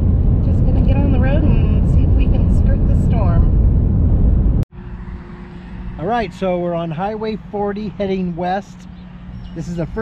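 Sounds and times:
road and engine noise in a truck cab: 0.0s - 10.0s.

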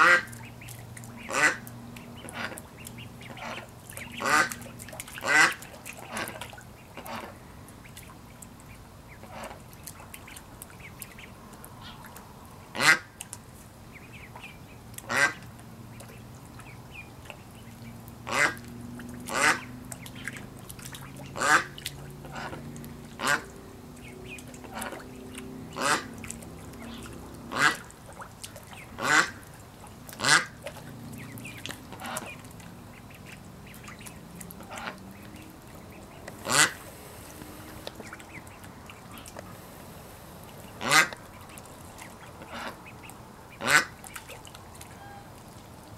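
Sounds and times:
ducks quacking: 0.0s - 12.0s, 12.7s - 13.1s, 13.9s - 45.3s.

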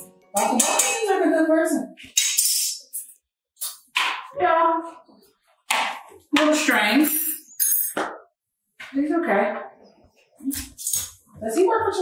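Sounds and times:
woman talking: 0.4s - 2.0s, 6.4s - 7.4s, 8.9s - 9.7s, 11.4s - 12.0s.

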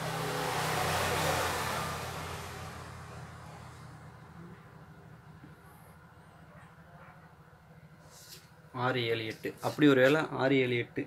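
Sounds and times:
road vehicle passing: 0.0s - 6.5s.

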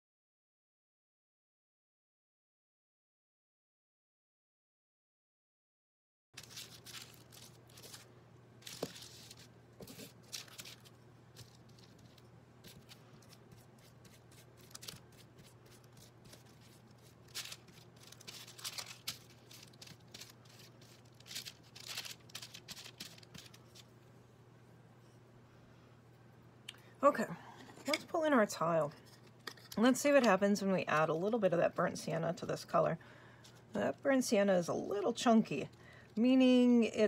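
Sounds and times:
faint low hum: 6.4s - 37.0s
paintbrush scratching on paper: 11.8s - 17.9s.

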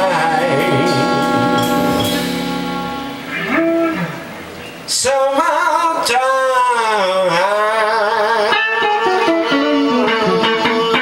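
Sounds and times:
live band held chord: 0.0s - 11.0s
low moaning vocal note: 0.2s - 4.3s.

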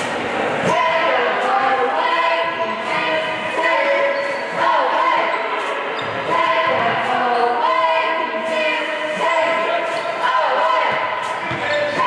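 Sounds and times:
singing voices: 0.0s - 12.0s.

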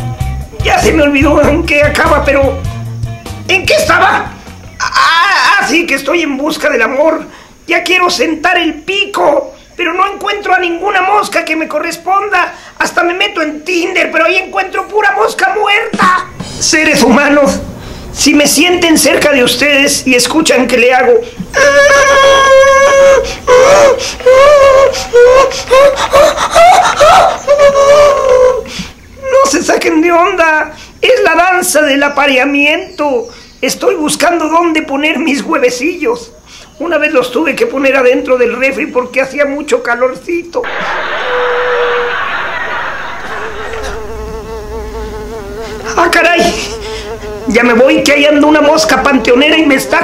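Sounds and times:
man imitating mosquito buzz: 21.3s - 29.4s, 43.4s - 49.7s.

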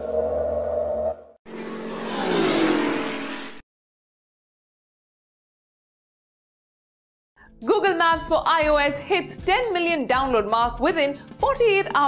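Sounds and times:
whoosh with falling tone: 0.0s - 3.6s.

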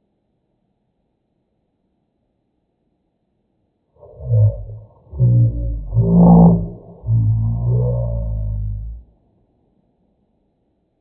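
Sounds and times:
slowed man's voice drone: 4.0s - 9.0s.

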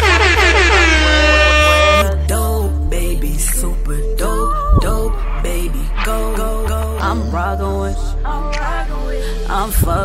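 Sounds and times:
air horn blast: 0.0s - 2.1s
hip-hop beat: 0.0s - 10.0s.

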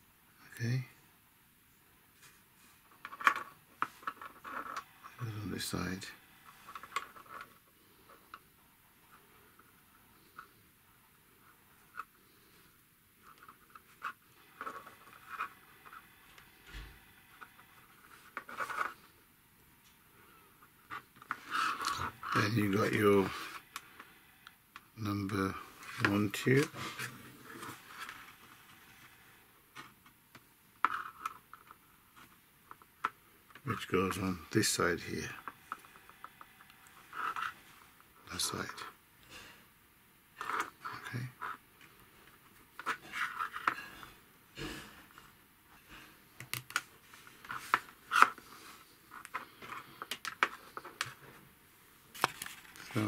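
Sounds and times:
plastic parts clicking and scraping: 2.9s - 5.2s, 6.4s - 8.5s, 13.2s - 19.1s, 20.6s - 24.9s, 29.8s - 33.9s, 35.3s - 38.8s, 40.4s - 44.0s, 45.8s - 51.4s, 52.1s - 53.0s
plastic tubing rubbing and clicking: 46.4s - 51.2s.

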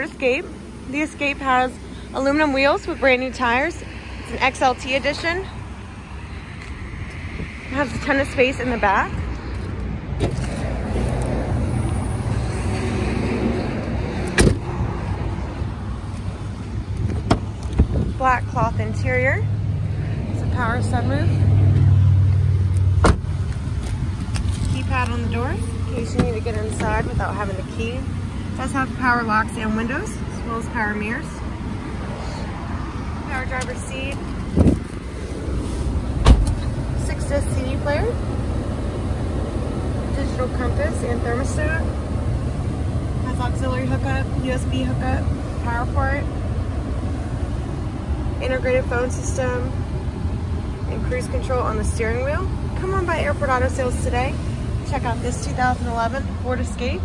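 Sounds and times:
steady low rumble: 0.0s - 57.0s.

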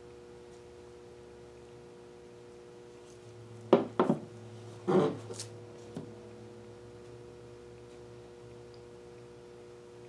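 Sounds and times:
faint steady hum: 0.0s - 10.0s
wooden frame knocking on table: 3.7s - 4.3s.

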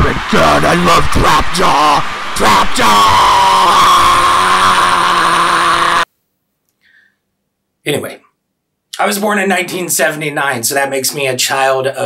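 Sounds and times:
man's distorted drawn-out shout: 0.0s - 6.1s.

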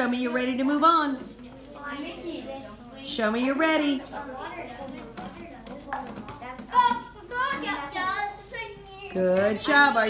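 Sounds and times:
children chattering: 1.0s - 10.0s.

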